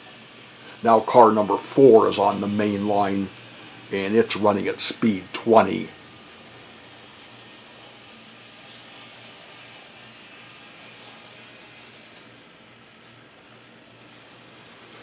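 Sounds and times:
model streetcars running on track: 0.0 - 12.4, 14.0 - 15.0
small click: 12.1 - 12.3, 13.0 - 13.2.

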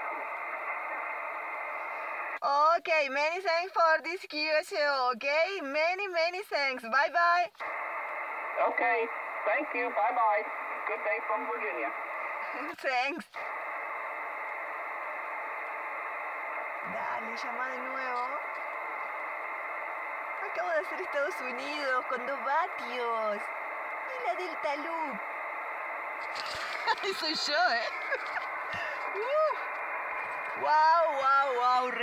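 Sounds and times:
radio static hiss: 0.0 - 32.0.

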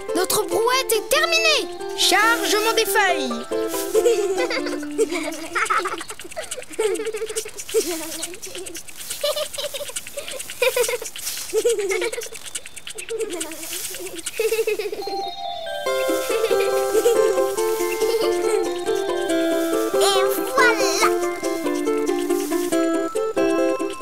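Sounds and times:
plucked string tune: 0.0 - 5.4, 15.0 - 24.0
rake rustling dry leaves: 0.0 - 24.0
cartoon character giggling: 3.8 - 19.3.

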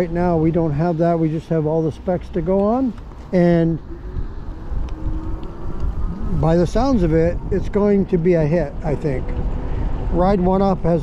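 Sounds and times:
road noise: 0.0 - 11.0
wind rumbling on microphone: 0.0 - 11.0.

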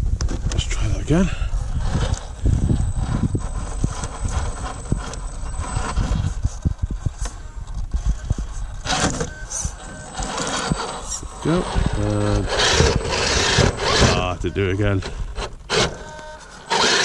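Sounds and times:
wind rumble on microphone: 0.0 - 15.7
electric motor whining: 1.5 - 17.0
tyres scrabbling on rock: 8.8 - 17.0.

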